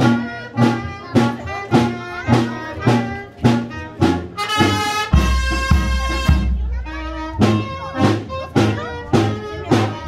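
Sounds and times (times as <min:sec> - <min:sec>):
brass band playing: 0:00.0 - 0:10.0
percussion beat: 0:00.0 - 0:10.0.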